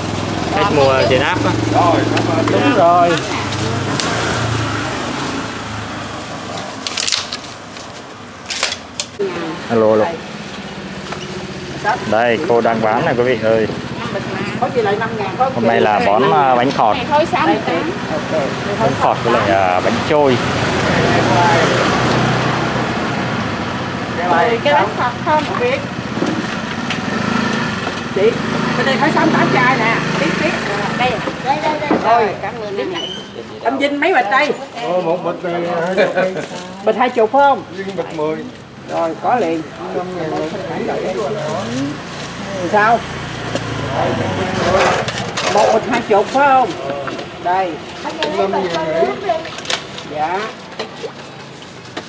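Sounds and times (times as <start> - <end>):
busy street stall background: 0.0 - 52.0
sharp handling noises: 6.5 - 9.2.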